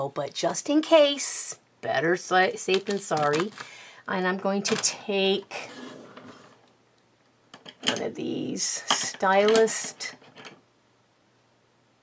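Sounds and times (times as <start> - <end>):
person speaking: 0.0 - 6.1, 7.8 - 10.2.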